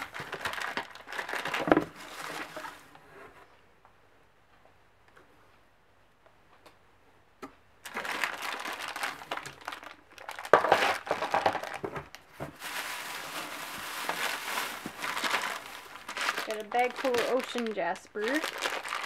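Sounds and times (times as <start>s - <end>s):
packing material rustling: 0.0s - 3.0s, 7.8s - 19.0s.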